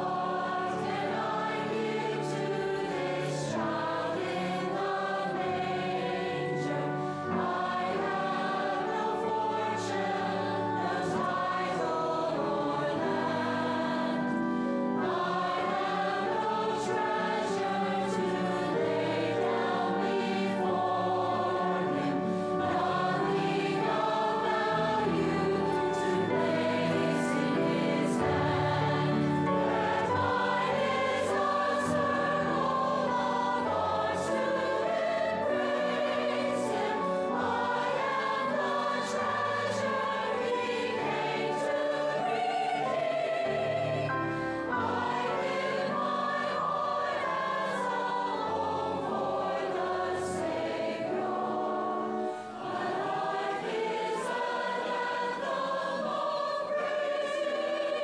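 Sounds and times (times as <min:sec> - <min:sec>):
mixed choir singing sustained notes: 0:00.0 - 0:58.0.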